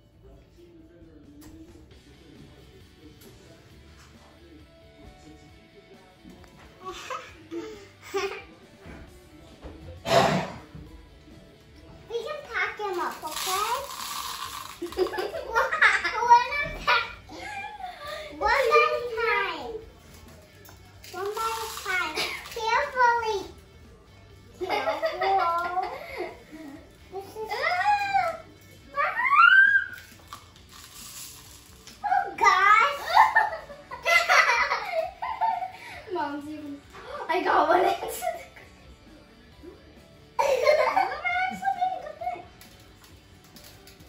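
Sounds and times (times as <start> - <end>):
faint background music: 0.0 - 44.0
young children's voices and laughter: 15.0 - 19.8, 24.6 - 30.0, 32.0 - 38.7, 40.4 - 42.5
child squealing: 29.0 - 30.0.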